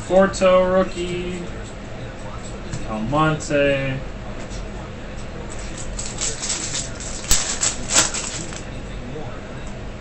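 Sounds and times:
foil wrapper crinkling and tearing: 5.6s - 8.7s.

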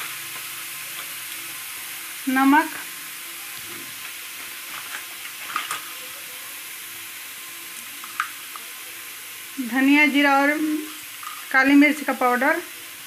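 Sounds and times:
onion and garlic sizzling in oil: 0.0s - 13.0s.

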